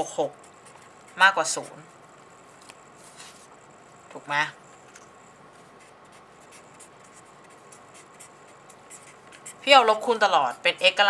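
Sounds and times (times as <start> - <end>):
felt-tip marker writing on paper: 0.0 - 1.9, 5.6 - 10.6.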